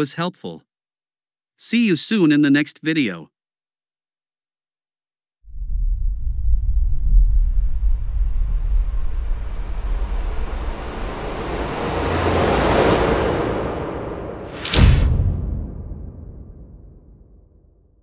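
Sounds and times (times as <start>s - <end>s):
deep rumble: 5.5s - 17.6s
rushing whoosh: 5.6s - 17.4s.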